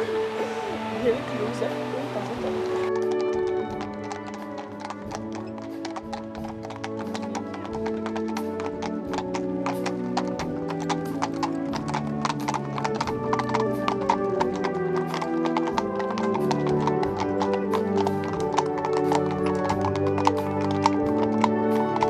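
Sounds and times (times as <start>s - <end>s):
hooves clip-clopping on asphalt: 0.0s - 22.0s
music with long held notes: 0.0s - 22.0s.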